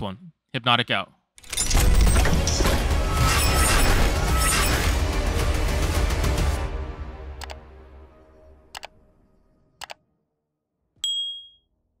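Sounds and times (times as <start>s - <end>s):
notification bell ding: 11.0s - 11.6s.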